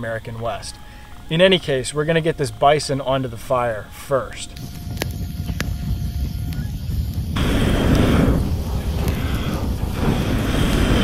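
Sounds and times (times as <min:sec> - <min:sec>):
campfire burning: 0:00.0 - 0:11.0.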